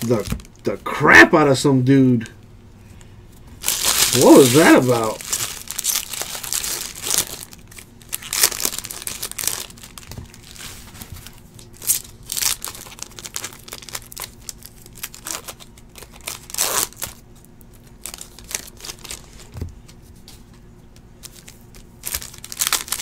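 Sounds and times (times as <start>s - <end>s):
foil wrappers crinkling and tearing: 3.6s - 19.6s, 21.2s - 23.0s.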